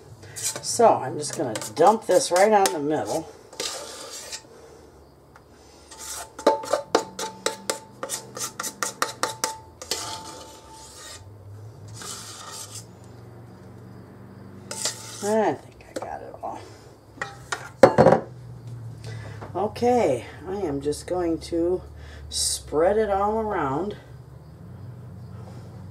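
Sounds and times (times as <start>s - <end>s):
knife scraping sheet pan: 0.3s - 4.4s, 5.9s - 11.3s, 11.9s - 12.9s, 14.7s - 15.4s
knife tapping metal bowl: 1.2s - 2.9s, 6.4s - 9.7s, 17.2s - 18.2s.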